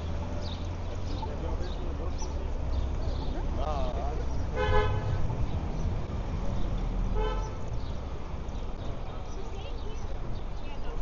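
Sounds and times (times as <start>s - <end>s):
low rumble of street traffic: 0.0s - 11.0s
car horn toots: 4.6s - 5.2s.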